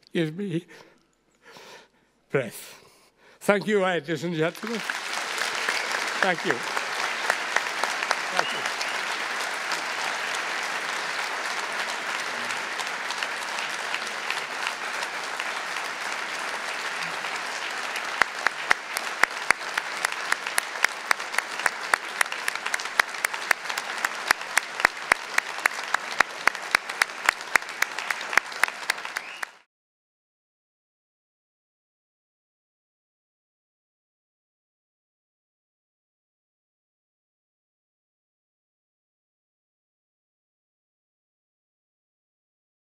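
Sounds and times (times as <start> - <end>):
audience applauding: 4.4 - 29.7
sharp evenly spaced claps: 4.6 - 29.6.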